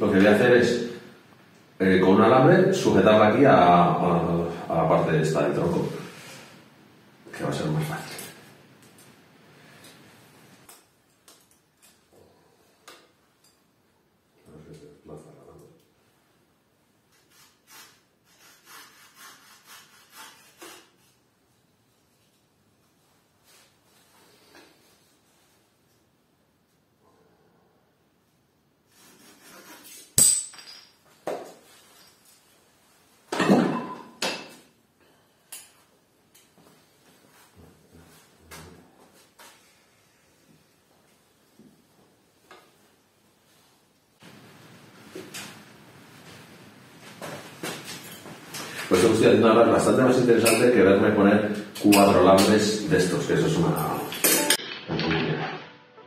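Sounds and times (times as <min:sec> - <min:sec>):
tools clattering: 0:30.2 - 0:31.2.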